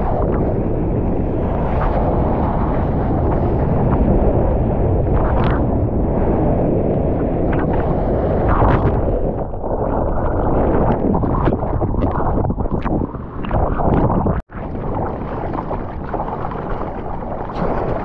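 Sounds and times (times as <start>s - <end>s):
wind buffeting camera: 0.0s - 18.0s
rushing water: 9.7s - 18.0s.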